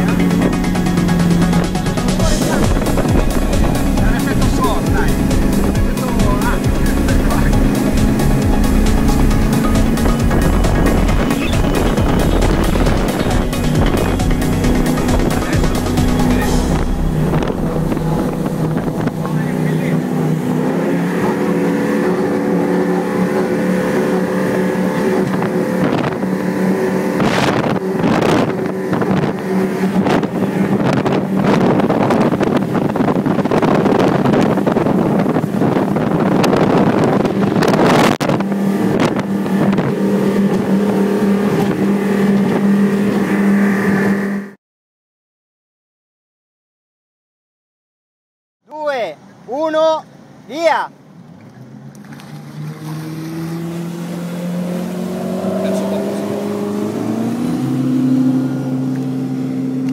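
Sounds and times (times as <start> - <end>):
rushing water: 0.0 - 44.2, 48.8 - 59.9
wind buffeting microphone: 0.0 - 44.2, 52.3 - 59.9
motorboat engine running: 0.0 - 44.6, 50.1 - 59.9.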